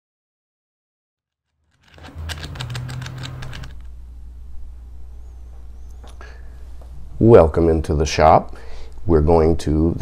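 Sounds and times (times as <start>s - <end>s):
light clicks and rattles: 1.7s - 3.9s
steady low hum: 1.8s - 9.8s.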